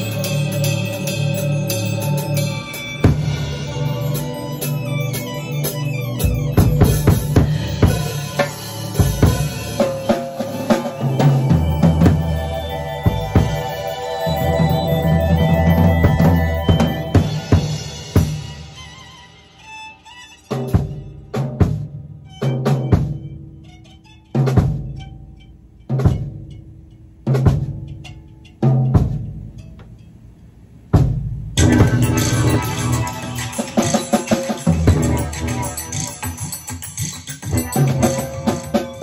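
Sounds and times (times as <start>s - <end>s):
funk band playing: 0.0s - 23.8s, 31.2s - 39.0s
drum hits with low chord: 6.2s - 18.6s, 20.7s - 22.1s, 31.0s - 36.5s.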